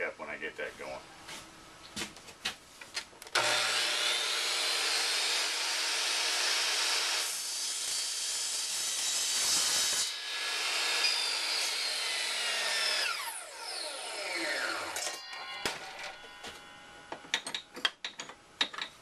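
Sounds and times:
miter saw cutting aluminum: 3.3 - 17.6.

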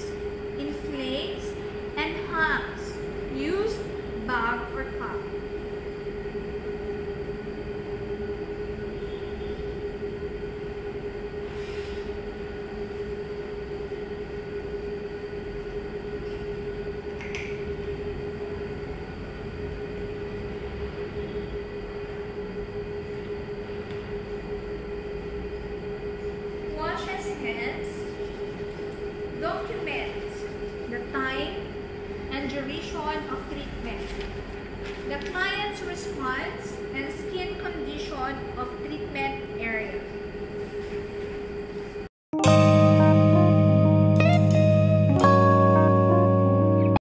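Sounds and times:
ventilation fan hum: 0.0 - 42.1
person speaking: 26.7 - 31.7.

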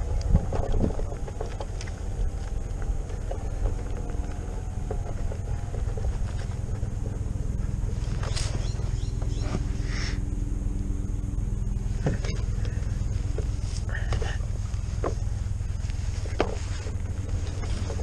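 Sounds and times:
light clicks and rattles: 0.0 - 9.4
faint motor hum: 0.0 - 18.0
low rumble of tyre and wind: 0.0 - 18.0.

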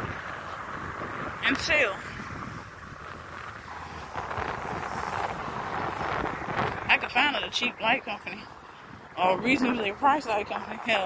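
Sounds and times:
vehicle passing on road: 0.0 - 11.0
wind on microphone: 0.0 - 11.0.

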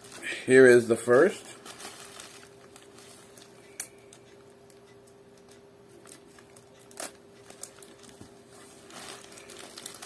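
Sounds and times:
plastic mailer package rustling: 0.0 - 3.8, 6.0 - 10.0.

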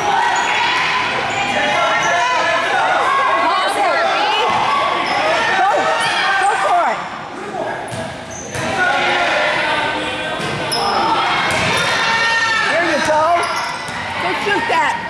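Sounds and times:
sneakers squeaking: 4.4 - 6.7, 7.8 - 9.0, 10.0 - 15.0.

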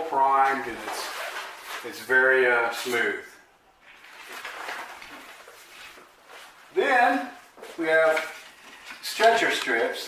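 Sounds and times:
canvas rustling: 0.0 - 3.0, 3.8 - 9.1.

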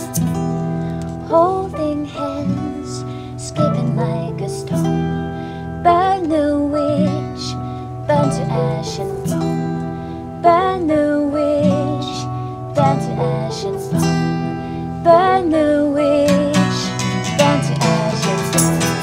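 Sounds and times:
acoustic guitar strumming: 0.0 - 19.0
piano: 0.0 - 19.0.

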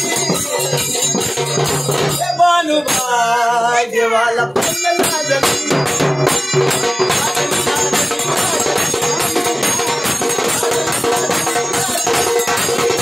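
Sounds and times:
drum beat: 0.0 - 3.4, 4.4 - 13.0
jingling percussion: 0.0 - 13.0
man singing devotional song: 0.0 - 13.0.

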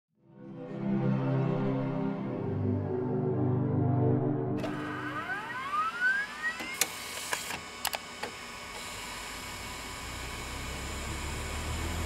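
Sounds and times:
rising electronic sweep: 2.3 - 6.8
sharp clicks: 6.6 - 8.4.

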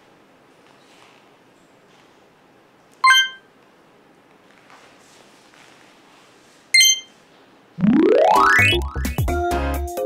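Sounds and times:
short high electronic beep: 3.0 - 3.4, 6.8 - 7.1.

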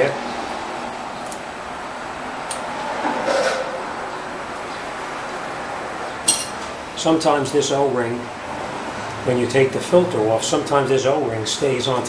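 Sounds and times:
shop background noise: 0.0 - 12.0
sharp metallic clink: 6.3 - 6.6.

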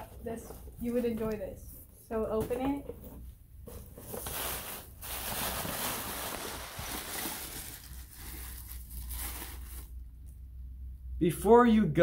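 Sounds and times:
tissue paper rustling: 3.7 - 10.0.

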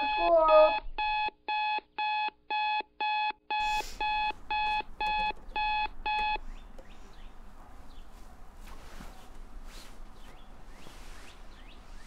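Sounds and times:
alarm clock beeping: 0.0 - 6.4.

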